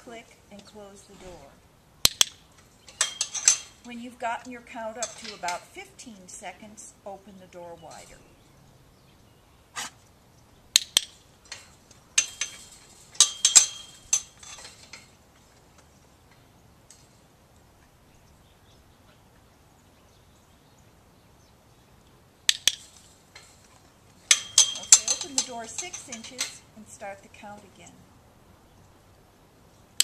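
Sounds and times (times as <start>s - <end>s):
chain-link gate clanking: 2.1s - 5.9s, 10.8s - 17.2s, 22.5s - 27.9s.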